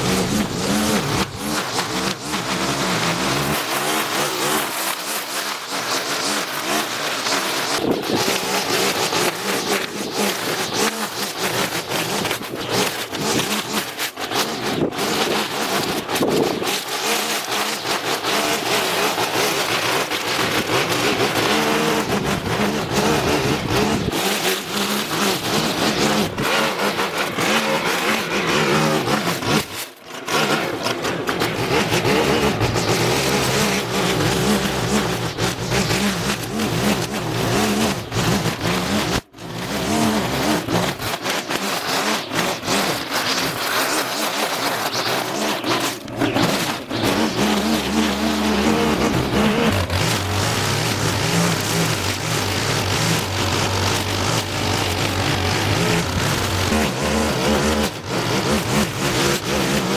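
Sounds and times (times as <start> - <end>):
small gasoline engine running: 0.0 - 59.9.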